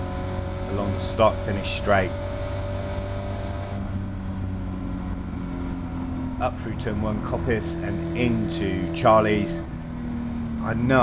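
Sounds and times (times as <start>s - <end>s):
race car engine drone: 0.0s - 11.0s.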